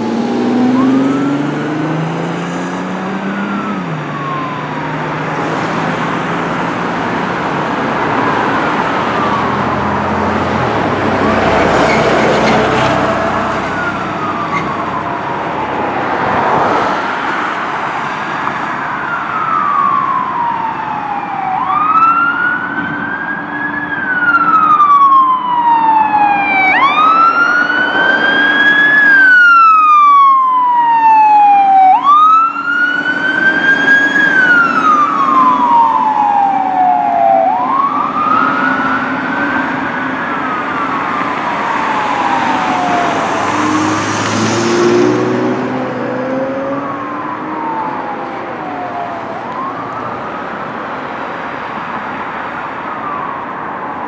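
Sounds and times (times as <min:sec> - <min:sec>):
fire truck siren wailing: 0:00.0 - 0:54.0
road traffic noise: 0:00.0 - 0:54.0.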